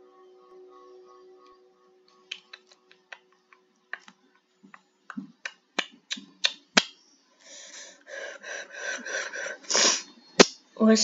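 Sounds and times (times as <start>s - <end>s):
breathy hiss: 7.4s - 10.1s.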